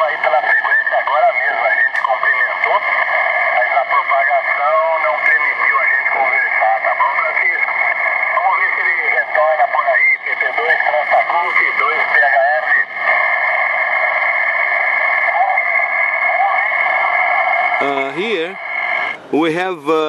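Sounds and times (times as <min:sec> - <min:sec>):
tinny radio voice: 0:00.0 - 0:13.3, 0:14.8 - 0:19.9
radio band noise hiss: 0:00.0 - 0:20.0.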